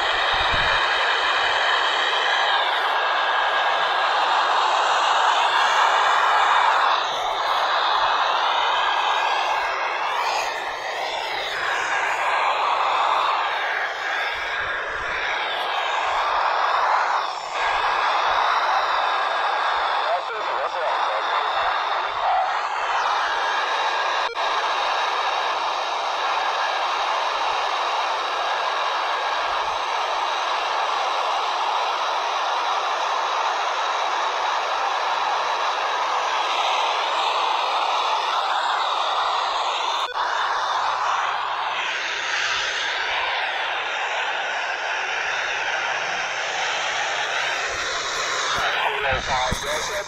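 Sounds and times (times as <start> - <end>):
radio static hiss: 0.0 - 30.9, 33.5 - 50.0
faint wavering radio signals: 0.0 - 50.0.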